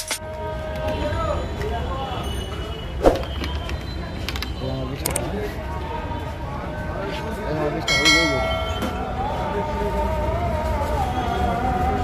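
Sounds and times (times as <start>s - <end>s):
traffic rumble: 0.0s - 12.0s
voices: 0.2s - 12.0s.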